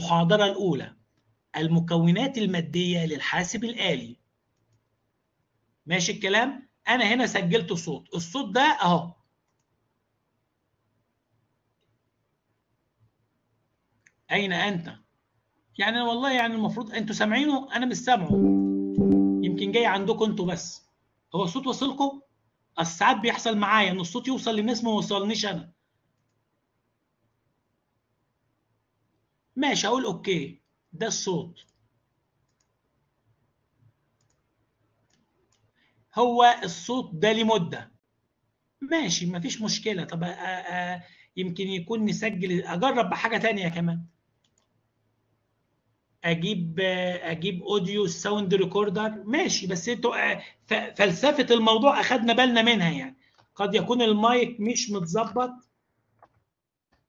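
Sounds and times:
computer mouse clicks: 4.5s - 4.9s, 9.2s - 9.8s, 26.1s - 26.5s, 31.6s - 32.8s, 33.8s - 35.8s, 44.1s - 44.8s, 53.2s - 53.6s, 55.6s - 57.0s.

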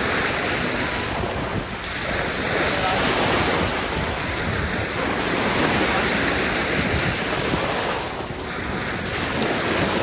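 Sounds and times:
small waves breaking on beach: 0.0s - 10.0s.

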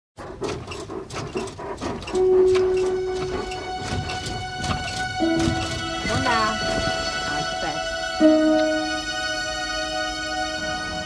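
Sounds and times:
bedsprings squeaking: 0.2s - 11.0s
sustained music notes: 2.1s - 11.0s.

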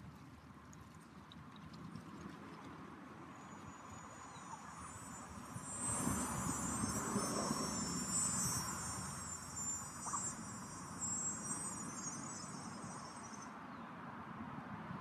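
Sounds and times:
high-pitched insect chorus: 3.3s - 13.6s.

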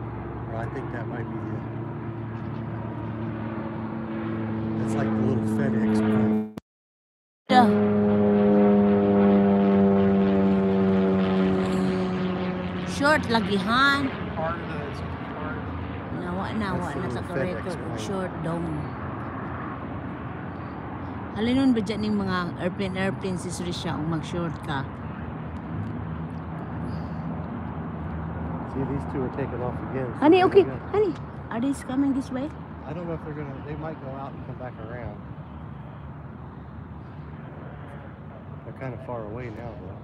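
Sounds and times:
propeller plane flying overhead: 0.0s - 6.6s, 7.5s - 40.0s.

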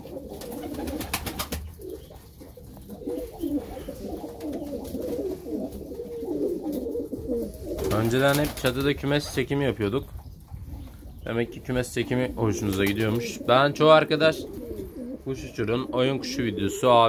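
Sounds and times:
pigeons cooing: 0.0s - 17.0s.

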